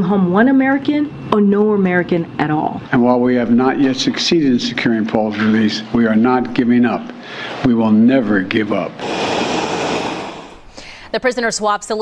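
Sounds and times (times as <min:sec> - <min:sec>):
jet aircraft rushing noise: 0:08.9 - 0:10.7.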